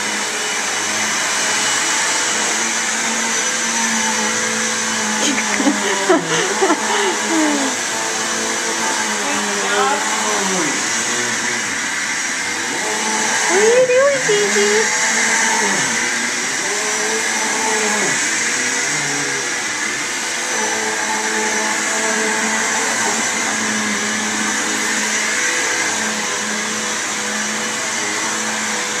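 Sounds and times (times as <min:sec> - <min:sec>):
vacuum cleaner running on carpet: 0:00.0 - 0:29.0.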